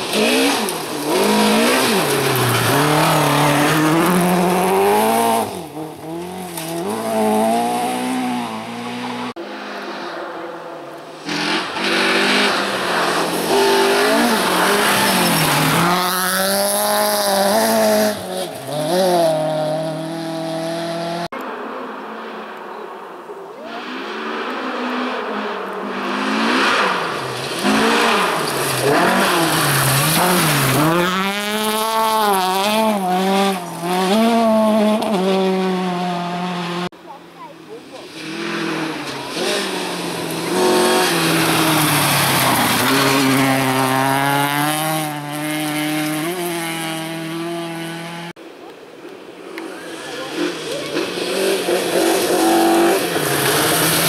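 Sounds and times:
tyres scrabbling on gravel: 0:00.0 - 0:07.6, 0:27.0 - 0:34.5, 0:38.4 - 0:46.7
rally car engines revving: 0:00.0 - 0:48.6, 0:49.3 - 0:54.0.

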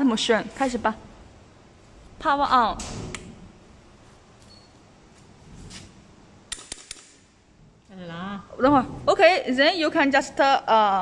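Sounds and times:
faint high beep: 0:04.4 - 0:04.8.

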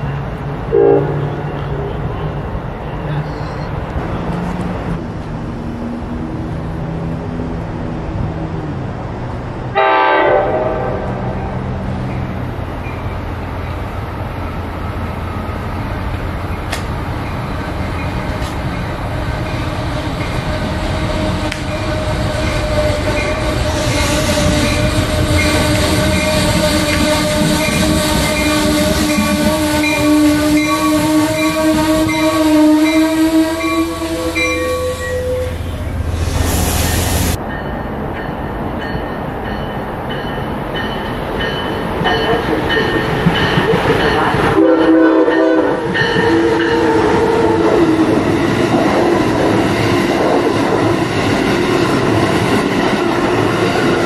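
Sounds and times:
train pulling into station: 0:00.0 - 0:54.0
train running close by: 0:00.0 - 0:54.0.

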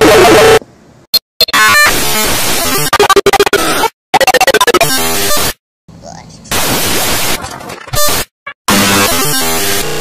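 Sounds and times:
chopped-up audio collage: 0:01.2 - 0:05.6, 0:06.5 - 0:10.0.

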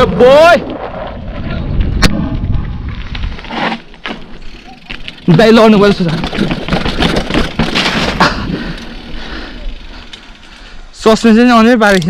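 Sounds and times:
bike rattling over stone paving: 0:00.8 - 0:12.0.

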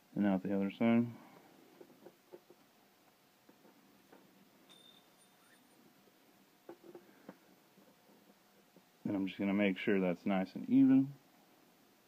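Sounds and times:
faint thin high tone: 0:04.7 - 0:05.8.

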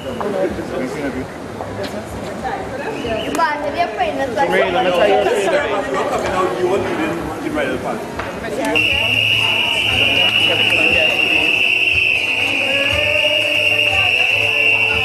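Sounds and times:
chatter of voices: 0:00.0 - 0:15.0.

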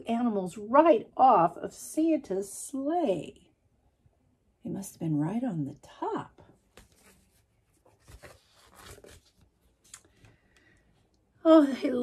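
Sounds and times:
book pages rustling: 0:06.6 - 0:10.8.

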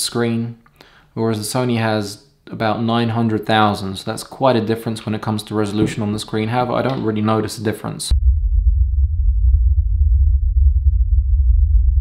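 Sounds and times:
voice: 0:00.0 - 0:00.6, 0:01.2 - 0:08.1
deep sub-bass drone: 0:08.1 - 0:12.0.

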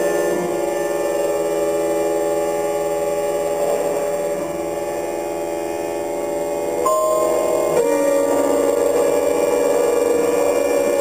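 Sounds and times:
chamber ensemble drone: 0:00.0 - 0:11.0
bowed cello: 0:03.4 - 0:11.0.

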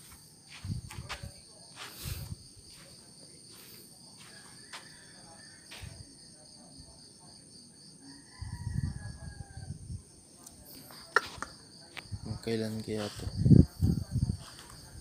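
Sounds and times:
crickets chirping: 0:00.0 - 0:15.0.

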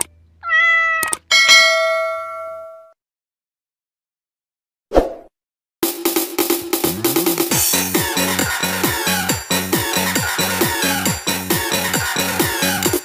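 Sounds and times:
cat meowing: 0:00.4 - 0:01.3
bright chime ringing: 0:01.3 - 0:02.9
upbeat music: 0:05.9 - 0:13.0.

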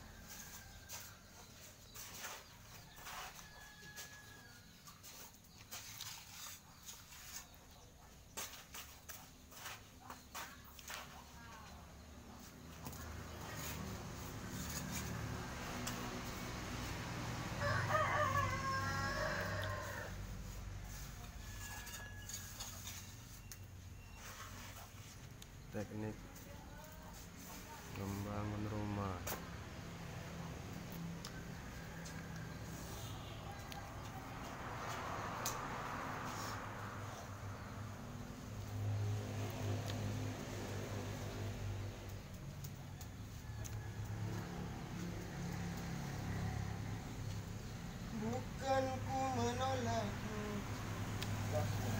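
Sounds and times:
rooster crowing: 0:00.0 - 0:01.4, 0:02.9 - 0:04.8, 0:16.8 - 0:23.5, 0:31.2 - 0:37.7, 0:43.0 - 0:47.0.

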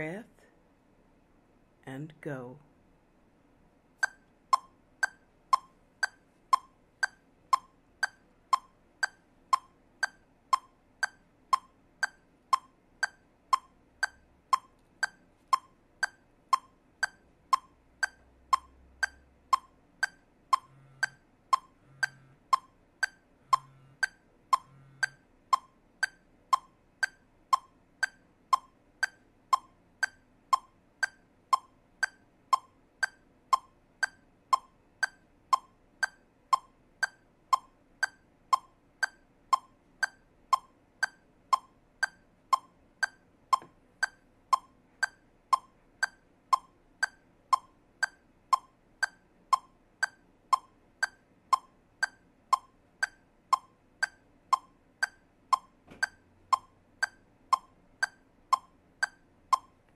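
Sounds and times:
metronome clicking: 0:04.0 - 0:59.9.

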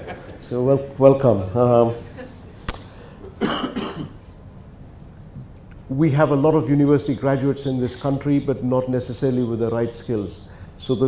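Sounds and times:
man coughing: 0:03.4 - 0:04.2.

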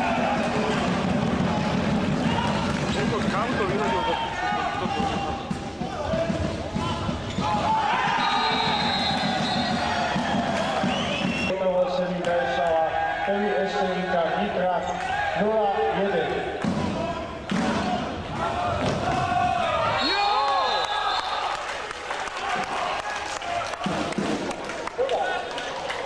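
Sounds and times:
hubbub of voices: 0:00.0 - 0:20.2.

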